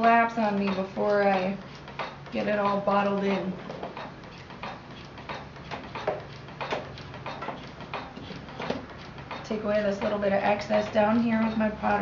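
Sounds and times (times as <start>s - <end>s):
potter's wheel rumbling: 0.0s - 12.0s
treadle ticking: 0.0s - 12.0s.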